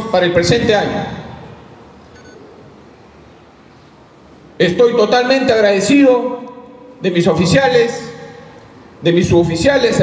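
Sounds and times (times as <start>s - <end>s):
low background noise: 0.0s - 10.0s
faint electronic beep: 2.1s - 2.4s.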